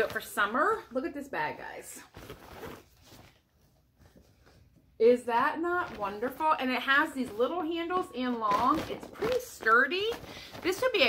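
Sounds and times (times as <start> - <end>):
fabric bag rustling: 1.4 - 11.0.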